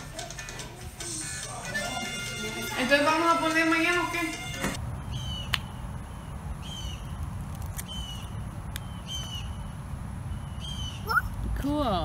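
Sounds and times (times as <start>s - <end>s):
bird calling: 6.2s - 7.2s, 7.8s - 9.7s, 10.3s - 11.4s.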